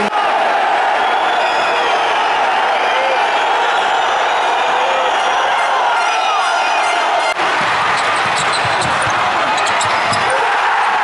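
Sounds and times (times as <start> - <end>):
arena crowd din: 0.0 - 11.0
basketball bouncing on court: 7.6 - 10.4
sneaker squeaks: 7.9 - 10.4.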